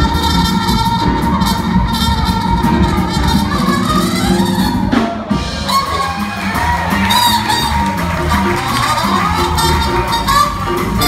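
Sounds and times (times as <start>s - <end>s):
drum kit: 0.0s - 11.0s
piano: 0.0s - 11.0s
trumpet: 0.0s - 11.0s
upright bass: 0.0s - 11.0s
audience cheering: 3.6s - 11.0s.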